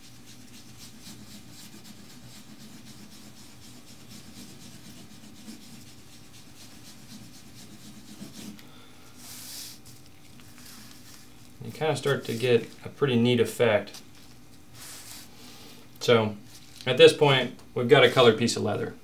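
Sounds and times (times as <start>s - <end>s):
sponge rubbing on leather: 0.0s - 8.6s, 9.2s - 12.8s, 14.7s - 15.4s.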